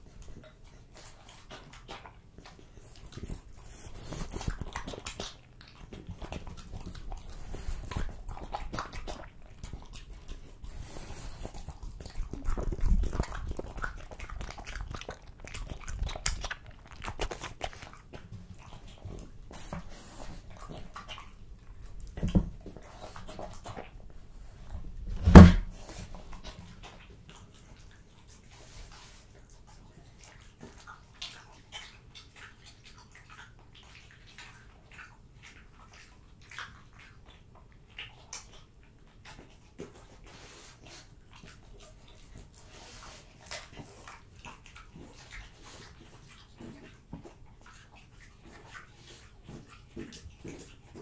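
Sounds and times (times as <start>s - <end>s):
dog chewing raw meat: 0.0s - 51.0s.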